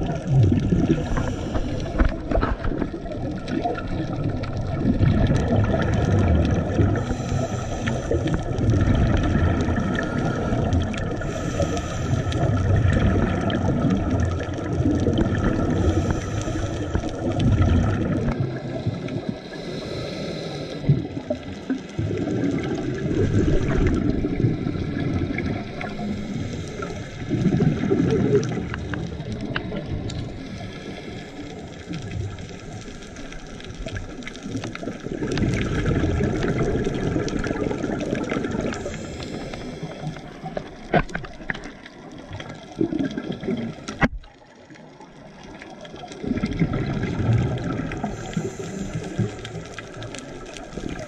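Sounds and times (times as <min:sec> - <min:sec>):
regulator bubbles hissing: 0:00.0 - 0:51.0
underwater low rumble: 0:00.0 - 0:51.0.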